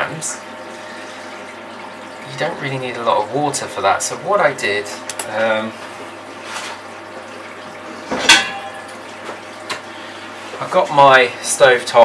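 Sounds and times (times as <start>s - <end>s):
metal pot clanking: 8.0s - 9.0s.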